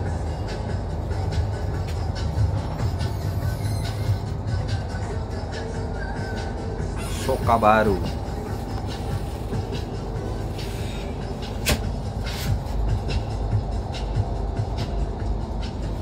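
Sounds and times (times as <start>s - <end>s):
bus engine and road rumble: 0.0s - 16.0s
faint music: 0.0s - 16.0s.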